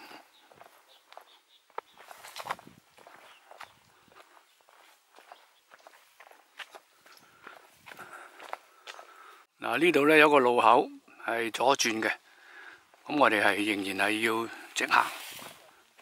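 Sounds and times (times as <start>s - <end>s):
footsteps on stony dirt trail: 0.0s - 9.4s, 14.5s - 16.0s.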